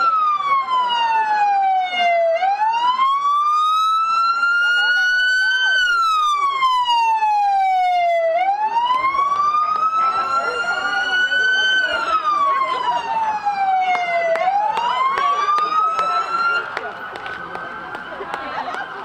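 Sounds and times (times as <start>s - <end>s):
emergency siren wailing: 0.0s - 19.0s
faint second siren: 0.0s - 19.0s.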